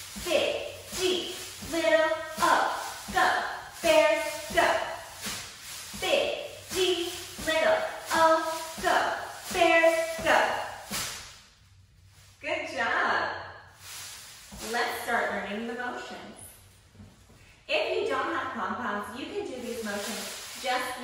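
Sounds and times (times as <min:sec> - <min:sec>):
pom-poms rustling: 0:00.0 - 0:12.9, 0:13.6 - 0:21.0
person speaking: 0:00.1 - 0:05.0, 0:05.9 - 0:10.6, 0:14.6 - 0:16.3
woman chanting a cheer: 0:00.2 - 0:04.9, 0:06.0 - 0:10.6.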